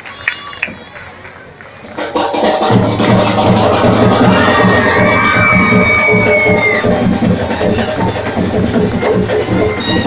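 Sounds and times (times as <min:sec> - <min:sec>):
crowd cheering: 0:00.0 - 0:02.1, 0:03.0 - 0:10.0
live stage music with drum beat: 0:01.8 - 0:10.0.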